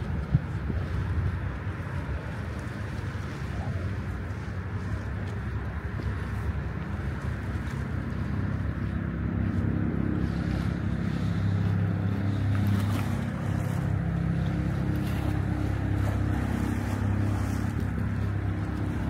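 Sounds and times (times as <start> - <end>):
low engine hum: 0.0 - 19.0
water lapping on stone shore: 0.0 - 19.0
wind: 0.0 - 19.0.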